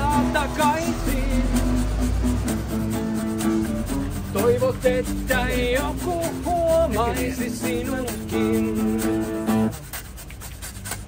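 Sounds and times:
muted guitar strumming: 0.0s - 10.0s
acoustic guitar playing: 0.0s - 11.0s.

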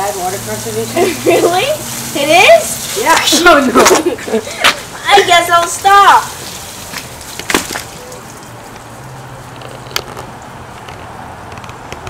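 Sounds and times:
water pouring from hose: 0.0s - 10.8s.

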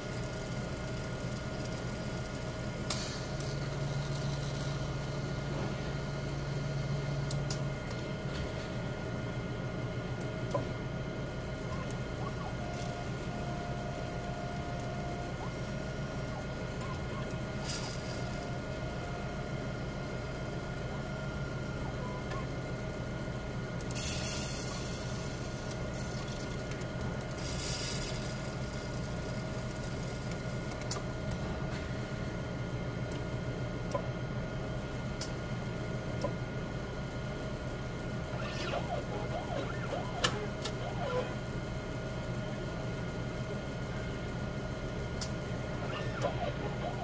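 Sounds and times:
machine fans and pumps humming: 0.0s - 47.0s
faint whining tones: 10.2s - 23.5s, 37.8s - 43.1s, 45.2s - 47.0s.

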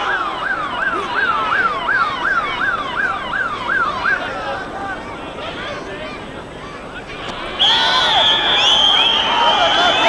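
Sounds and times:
siren yelping: 0.0s - 5.1s.

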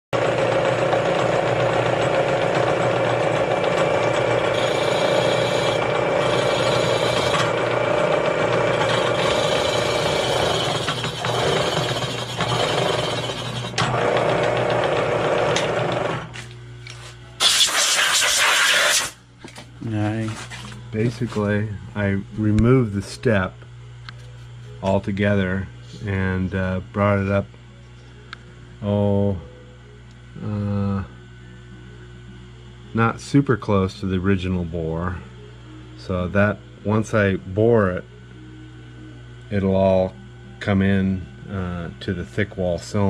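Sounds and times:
motor hum: 0.1s - 43.0s
milling machine cutting metal: 0.2s - 16.3s
loud hiss: 17.4s - 19.2s.

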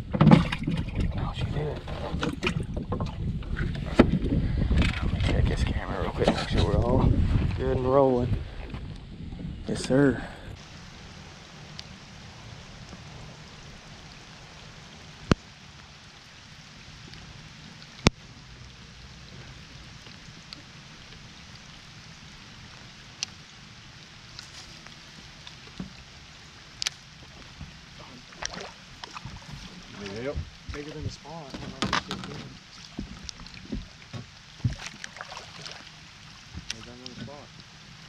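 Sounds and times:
water lapping against boat hull: 0.0s - 10.7s, 24.2s - 38.0s.

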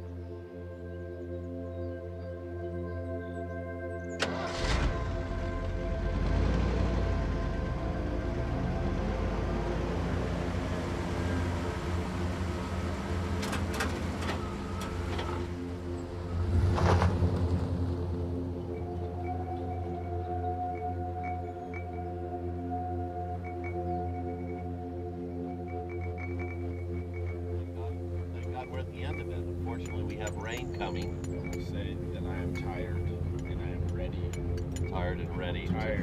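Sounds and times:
ambient music with sustained tones: 0.0s - 36.0s
truck engine running: 4.2s - 18.8s.

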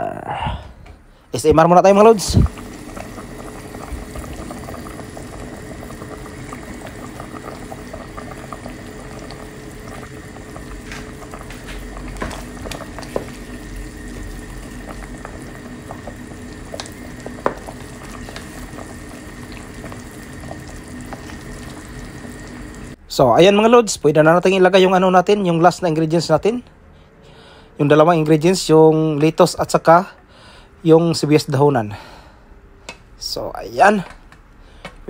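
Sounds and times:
broth bubbling at a boil: 2.2s - 23.0s.

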